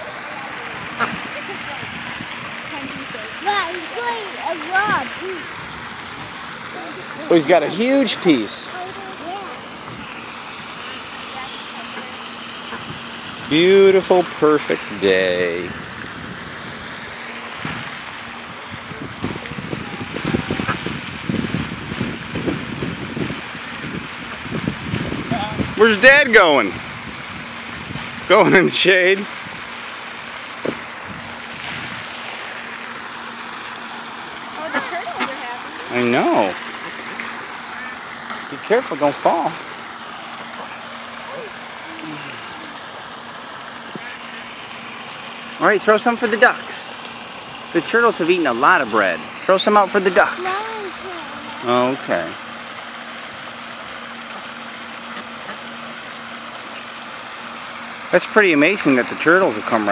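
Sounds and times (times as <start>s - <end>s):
wind buffeting microphone: 0.6s - 3.7s, 15.6s - 17.0s, 17.6s - 25.8s, 26.7s - 28.3s, 31.0s - 32.1s.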